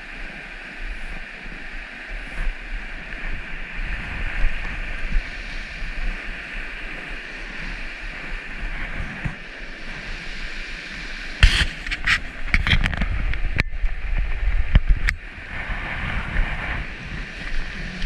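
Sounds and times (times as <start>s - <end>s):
creek water rushing: 0.0s - 18.0s
wind rumble on microphone: 0.0s - 18.0s.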